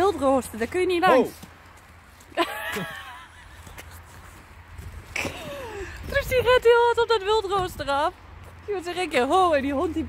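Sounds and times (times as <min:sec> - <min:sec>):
woman laughing: 0:02.3 - 0:03.7.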